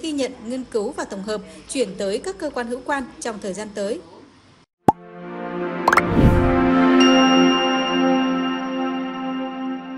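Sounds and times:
plop: 0:05.9 - 0:06.1
quick rising tones: 0:05.9 - 0:06.8.

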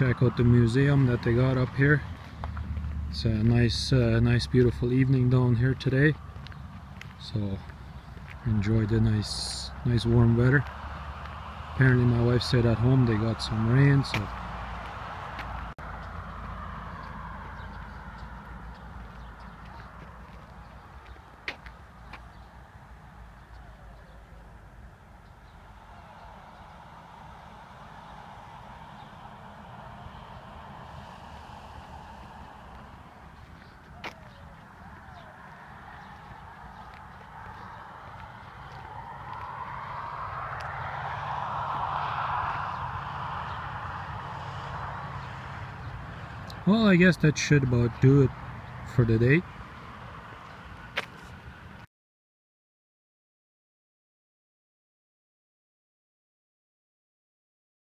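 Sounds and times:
distant road traffic rumble: 0:00.0 - 0:51.9
vehicle passing: 0:00.0 - 0:51.9.

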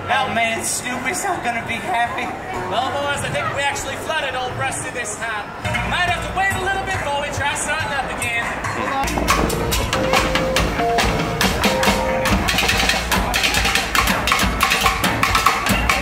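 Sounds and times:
acoustic guitar: 0:08.6 - 0:13.3.

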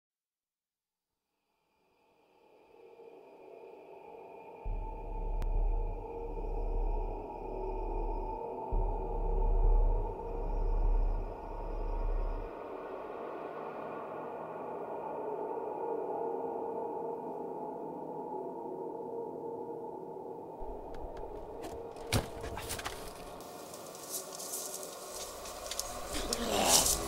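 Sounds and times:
dark ambient drone: 0:01.8 - 0:27.0
deep bass swells: 0:04.7 - 0:12.5.

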